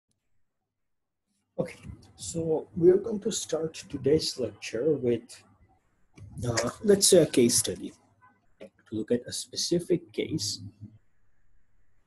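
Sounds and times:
man speaking: 1.6 - 5.4, 6.3 - 7.9, 8.9 - 10.9.

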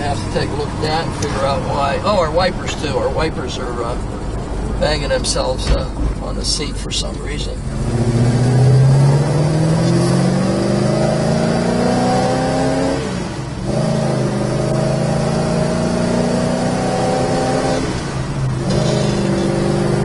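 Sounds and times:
car engine accelerating through gears: 7.6 - 20.0.

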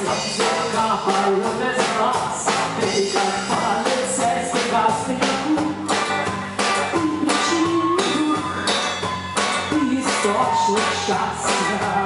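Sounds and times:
electric bass guitar: 0.0 - 12.0.

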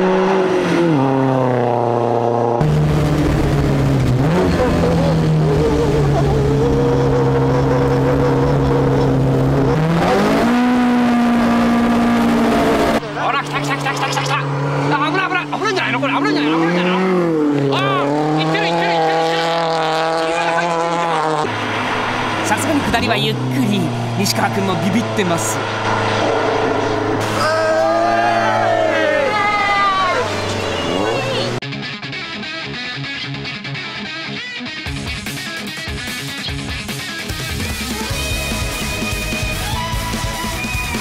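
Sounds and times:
car engine revving high: 0.0 - 31.6.

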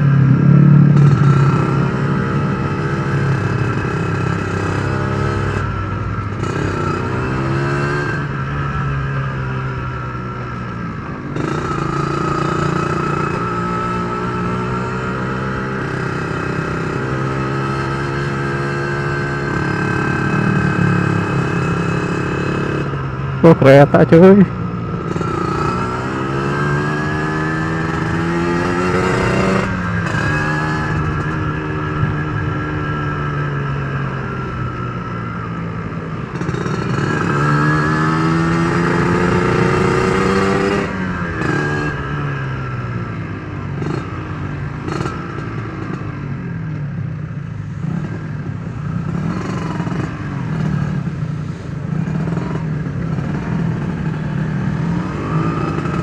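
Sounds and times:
motorcycle engine revving: 0.0 - 56.0.

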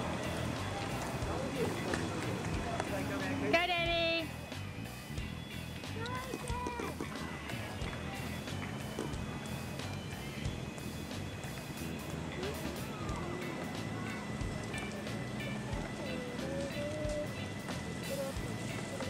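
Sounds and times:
background music: 0.0 - 19.0
faint voices: 0.0 - 19.0
outdoor ambience: 0.0 - 19.0.

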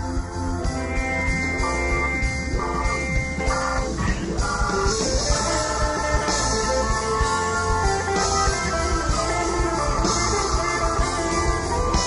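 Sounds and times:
electric guitar melody: 0.0 - 12.0
live band drums: 0.0 - 12.0.

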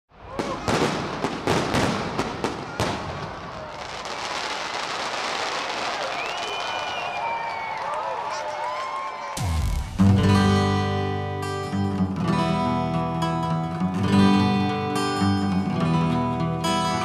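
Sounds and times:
fireworks banging and crackling: 0.1 - 7.2
onlookers' voices: 5.5 - 9.9.

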